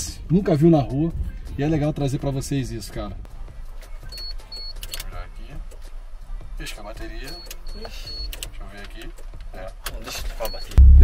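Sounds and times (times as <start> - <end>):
steady low hum: 10.8 - 11.0.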